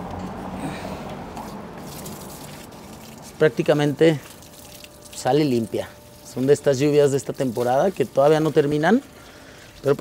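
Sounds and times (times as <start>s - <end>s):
water running from a tap: 1.4s - 10.0s.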